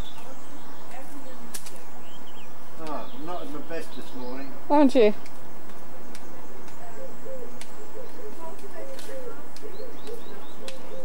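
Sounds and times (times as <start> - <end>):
stick clacking on pavement: 1.5 - 1.8, 2.8 - 3.1, 5.2 - 6.9, 7.6 - 7.8, 8.4 - 11.0
faint bird chirps: 6.0 - 11.0.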